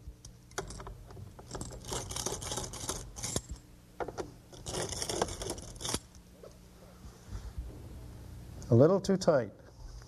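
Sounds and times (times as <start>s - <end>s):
screwdriver grinding in screw: 1.5s - 3.6s, 4.5s - 6.1s.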